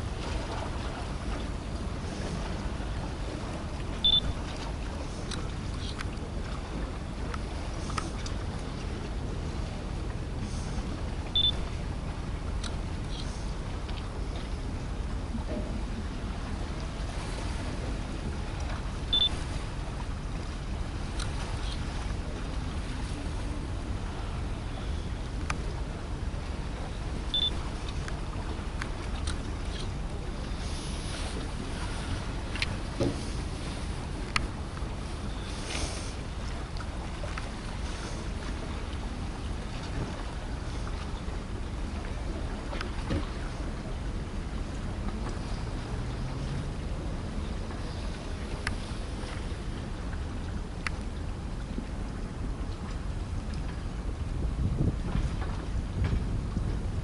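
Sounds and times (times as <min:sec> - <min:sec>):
steady low rumble: 0:00.0 - 0:57.0
wind on microphone: 0:00.0 - 0:57.0
faint clicks: 0:07.3 - 0:08.7, 0:25.4 - 0:25.7, 0:34.2 - 0:34.8, 0:48.6 - 0:48.8, 0:50.4 - 0:51.1
wind buffeting microphone: 0:53.2 - 0:57.0.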